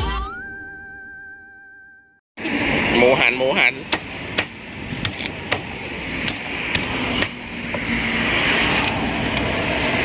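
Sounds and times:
cleaver chopping on wooden block: 3.9s - 8.0s.

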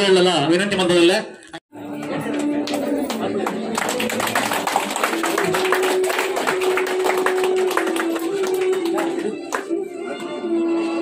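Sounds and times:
people clapping: 1.8s - 10.4s.

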